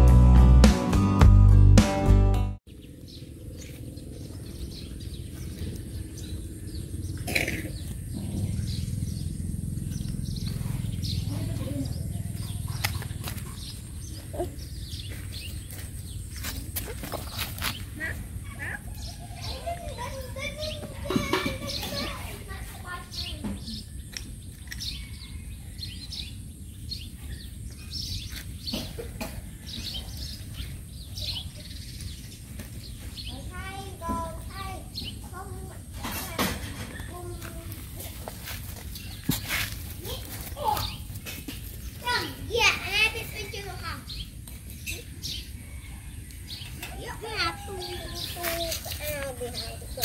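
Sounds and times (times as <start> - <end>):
birds chirping: 2.7 - 50.0
distant children's voices: 4.2 - 50.0.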